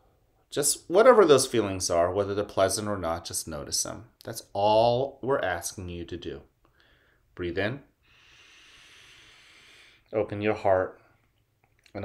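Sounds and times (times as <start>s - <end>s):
man breathing in: 6.7s - 7.3s, 8.0s - 10.1s.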